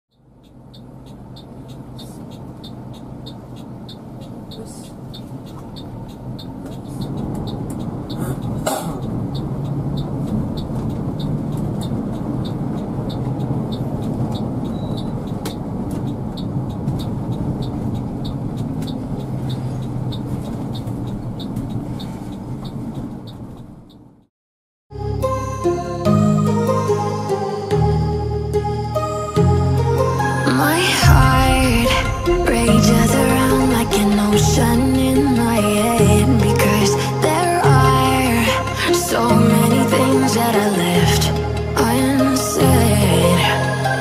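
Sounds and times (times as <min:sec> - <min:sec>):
coach engine hum and road noise: 0:00.1 - 0:24.3, 0:25.2 - 0:44.0
high ticking: 0:25.2 - 0:44.0.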